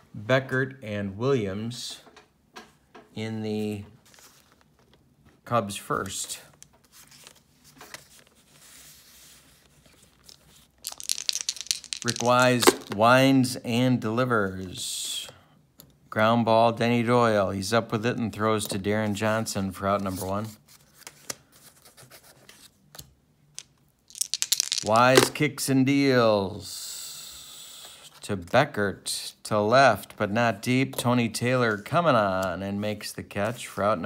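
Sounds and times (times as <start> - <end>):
paper cards rustling: 4.0 - 5.0, 5.9 - 13.0, 24.1 - 25.3
dice rattling in hand: 10.2 - 13.0, 23.6 - 25.4.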